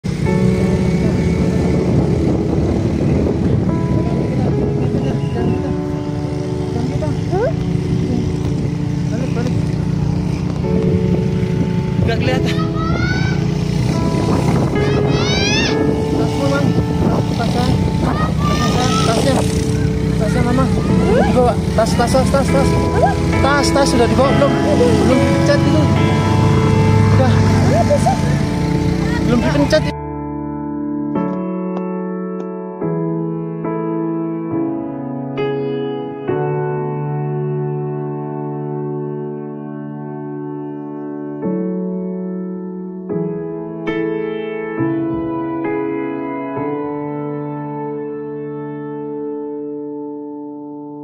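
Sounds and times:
motorcycle engine rumble: 0.0s - 30.0s
road noise: 0.0s - 30.1s
background music chords: 0.0s - 51.0s
wind: 0.0s - 51.0s
voices: 14.8s - 29.9s.

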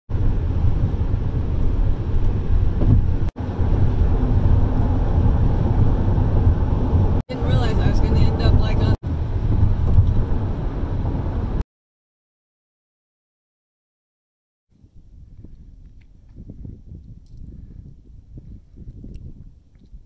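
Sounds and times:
car cabin road rumble: 0.1s - 11.6s.

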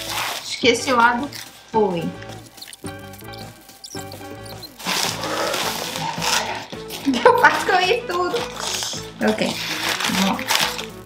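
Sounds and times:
wrapping paper rustling: 0.0s - 1.7s, 4.6s - 11.0s
background music: 0.0s - 11.0s.

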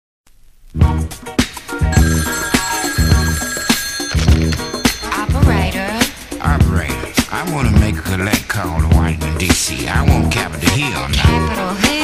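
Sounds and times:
telephone ringing: 1.9s - 6.3s.

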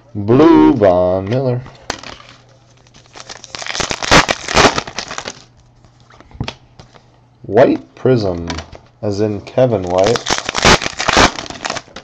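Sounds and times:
wrapper tearing and crinkling: 2.0s - 5.5s, 9.8s - 12.0s.

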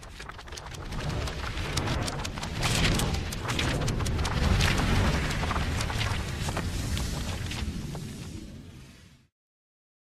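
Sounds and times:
heavy rain: 0.8s - 8.9s.

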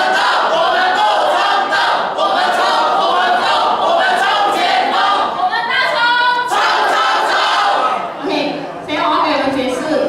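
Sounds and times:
group singing without accompaniment: 0.0s - 8.1s.

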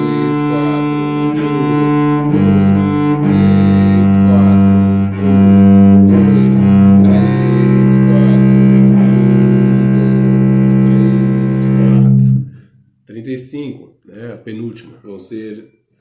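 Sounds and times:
bowed cello: 0.0s - 12.7s.

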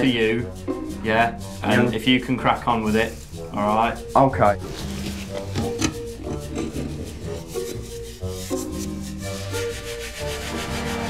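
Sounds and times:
background music: 0.0s - 11.0s
cloth scrubbing toilet bowl: 0.0s - 11.0s.

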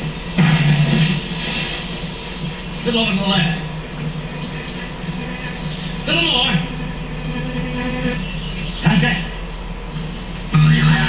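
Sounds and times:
film soundtrack music on television: 0.0s - 11.0s.

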